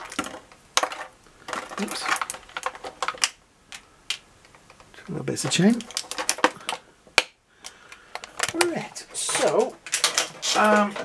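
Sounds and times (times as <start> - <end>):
plastic packaging clicks and taps: 0.0 - 8.8.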